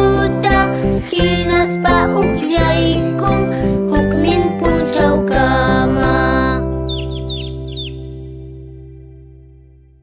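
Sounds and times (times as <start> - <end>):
children's song: 0.0 - 7.2
high downward-sliding peeps: 5.6 - 8.6.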